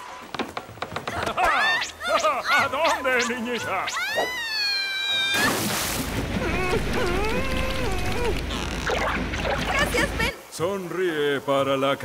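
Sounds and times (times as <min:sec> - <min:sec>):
high held cartoon cry: 0:06.4 - 0:08.4.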